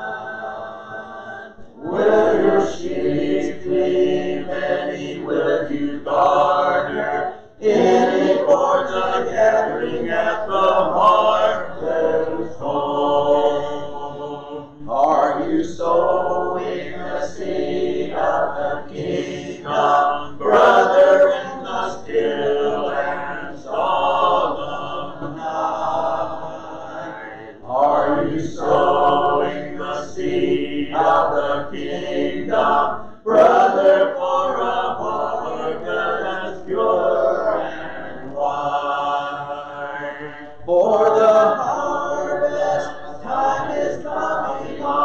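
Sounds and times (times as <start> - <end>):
congregation singing a hymn: 0.0 - 45.0.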